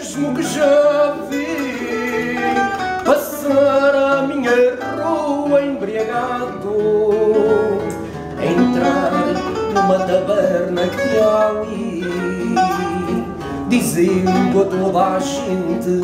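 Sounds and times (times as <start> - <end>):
classical guitar accompaniment: 0.0 - 16.0
man singing long notes: 0.0 - 16.0
plucked guitar melody: 0.0 - 16.0.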